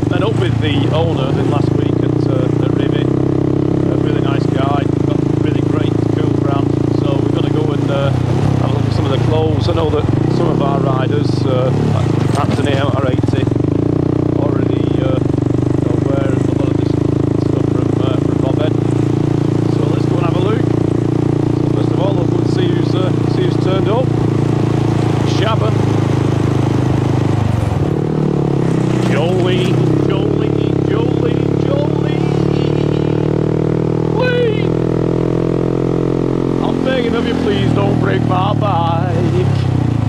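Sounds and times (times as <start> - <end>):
motorcycle engine running: 0.0 - 40.0.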